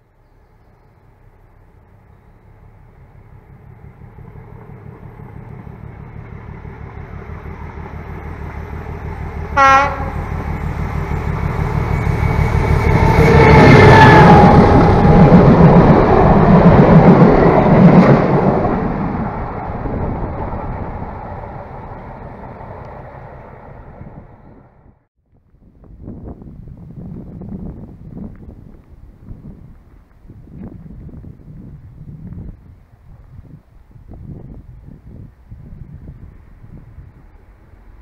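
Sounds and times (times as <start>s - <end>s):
diesel locomotive passing: 0.0s - 25.1s, 25.8s - 38.0s.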